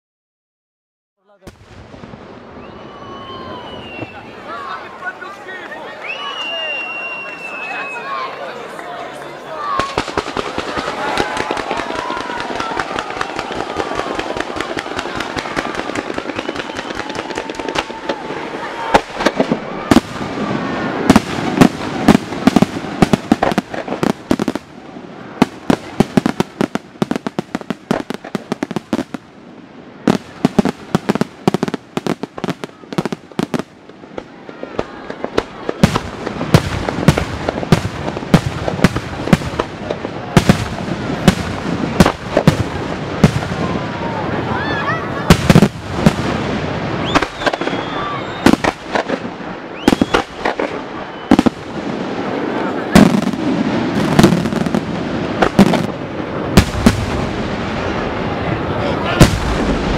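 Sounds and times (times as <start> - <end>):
fireworks bursting and crackling: 1.3 - 59.9.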